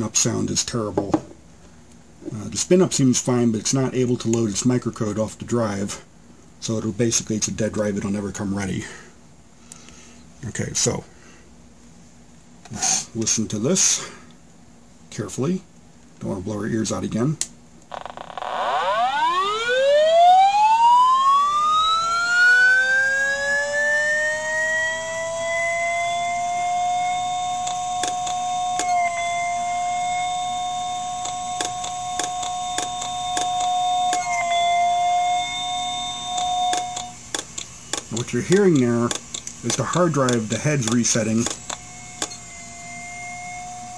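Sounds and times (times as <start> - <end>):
hard drive motor whine: 17.9 - 43.9
hard drive head clicks: 31.2 - 34.2, 36.4 - 42.4.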